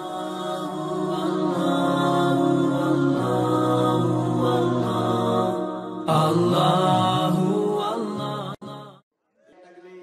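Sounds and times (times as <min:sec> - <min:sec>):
intro music with chanting voice: 0:00.0 - 0:09.0.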